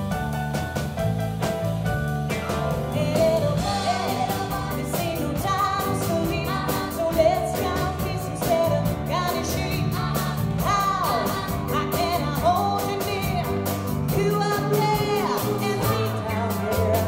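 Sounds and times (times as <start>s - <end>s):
pop band playing: 0.0s - 17.0s
woman singing: 2.7s - 17.0s.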